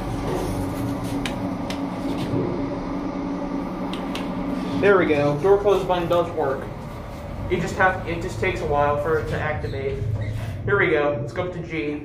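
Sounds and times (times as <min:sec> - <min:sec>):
elevator cab hum: 0:00.0 - 0:11.5.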